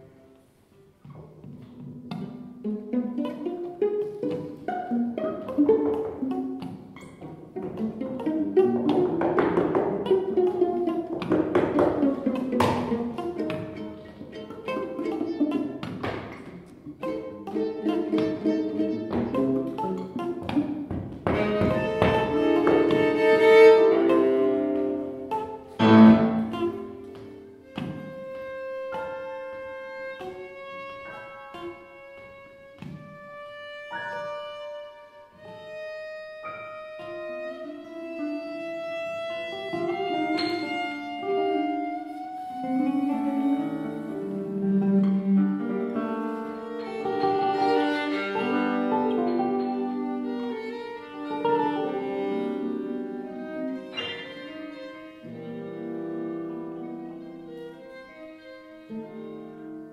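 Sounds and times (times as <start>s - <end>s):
free-improvised ensemble music: 0.0s - 59.9s.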